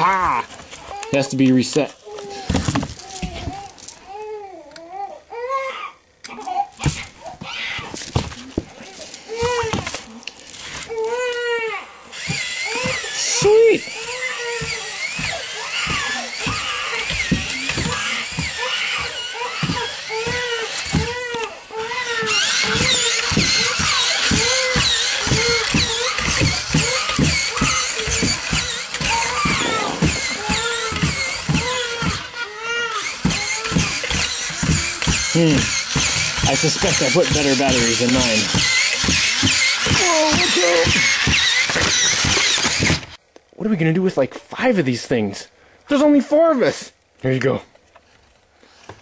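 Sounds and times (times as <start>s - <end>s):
toy robot motor whirring: 0.0s - 4.0s, 6.3s - 43.2s.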